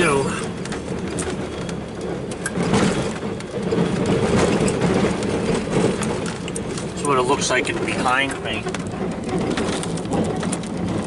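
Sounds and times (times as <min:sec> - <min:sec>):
truck engine under load: 0:00.0 - 0:11.0
knocks and rattles: 0:00.4 - 0:11.0.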